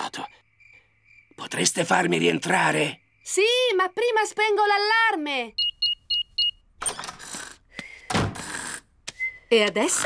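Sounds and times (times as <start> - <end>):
door shutting with a thud: 8.1 - 8.5.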